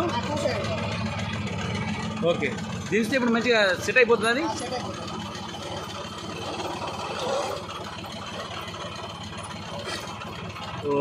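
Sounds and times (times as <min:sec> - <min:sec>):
tractor engine running steadily: 0:00.0 - 0:11.0.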